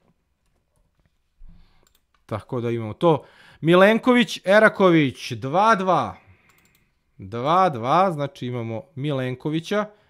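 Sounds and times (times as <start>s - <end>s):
computer mouse clicks: 1.8s - 2.3s, 6.4s - 6.9s.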